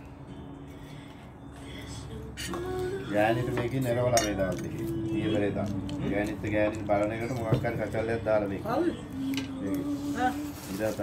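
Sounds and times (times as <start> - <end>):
cutlery clinking on plate: 3.6 - 4.8.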